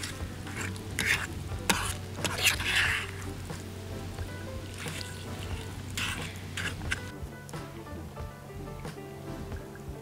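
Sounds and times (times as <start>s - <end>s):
utensil scraping a pot: 0.0s - 7.1s
eggs sizzling: 0.0s - 10.0s.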